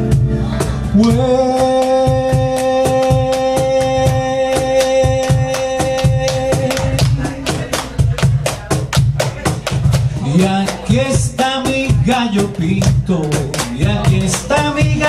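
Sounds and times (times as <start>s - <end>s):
drum kit: 0.0s - 15.0s
electric bass: 0.0s - 15.0s
sliding wordless melody: 0.0s - 15.0s
hand percussion: 1.0s - 15.0s.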